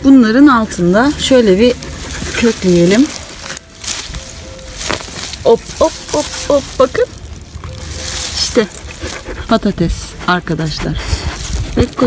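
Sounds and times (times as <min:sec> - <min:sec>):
hand adze digging soil: 0:00.0 - 0:12.0
loose earth rustling: 0:00.0 - 0:12.0.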